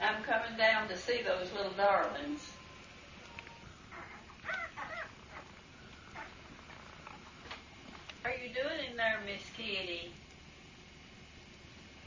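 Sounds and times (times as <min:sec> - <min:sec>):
puppies crying in high squeaks: 0:03.5 - 0:07.2.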